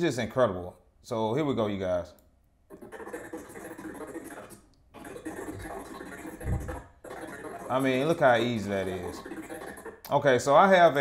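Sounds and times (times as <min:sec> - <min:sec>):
choppy garbled video playback: 0:02.7 - 0:11.0.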